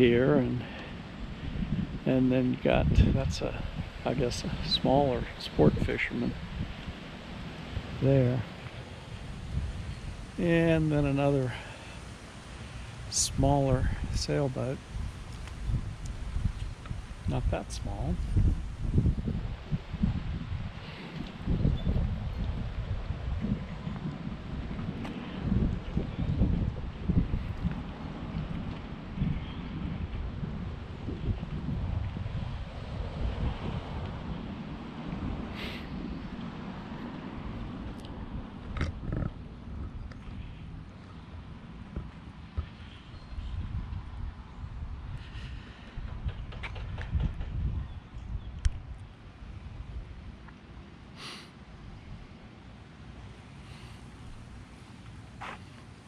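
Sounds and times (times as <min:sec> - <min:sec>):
wind buffeting microphone: 0:00.0 - 0:11.7, 0:12.9 - 0:50.4.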